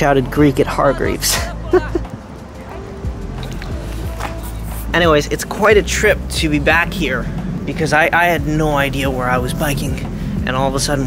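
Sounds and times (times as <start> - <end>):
background music sustained tones: 0.0 - 11.0
bicycle tyres rolling on asphalt: 2.1 - 11.0.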